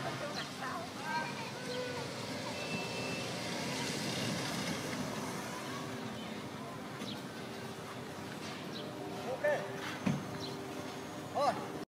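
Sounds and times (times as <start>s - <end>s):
small car engine running: 0.0s - 11.8s.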